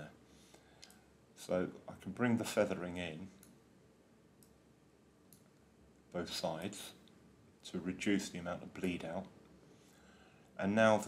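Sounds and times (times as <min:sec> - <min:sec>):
computer mouse clicks: 0:00.8 - 0:01.0, 0:05.3 - 0:05.6.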